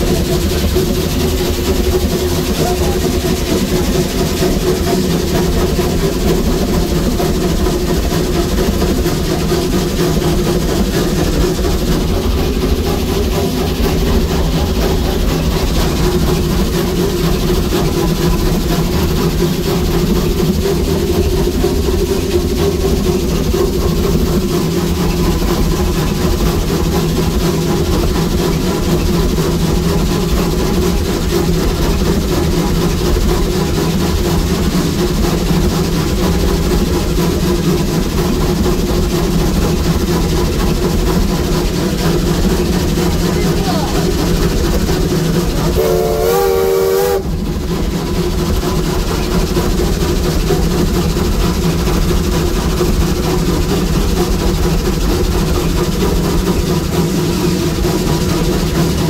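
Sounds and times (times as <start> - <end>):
steam locomotive running noise: 0.0 - 59.0.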